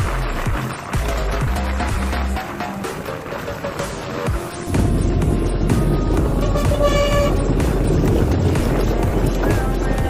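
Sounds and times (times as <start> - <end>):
vehicle road and engine rumble: 0.0 - 10.0
vehicle horn toot: 6.4 - 7.5.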